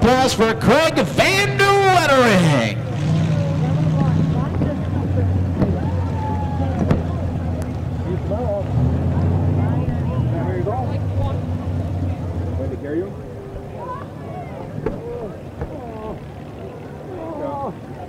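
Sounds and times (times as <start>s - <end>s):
car engine idling: 0.0s - 17.2s
faint voices: 0.0s - 18.0s.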